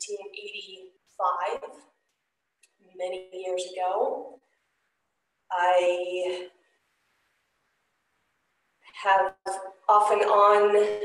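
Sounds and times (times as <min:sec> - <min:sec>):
woman speaking: 0:00.0 - 0:01.8, 0:02.8 - 0:04.4, 0:05.5 - 0:06.6, 0:08.9 - 0:11.0.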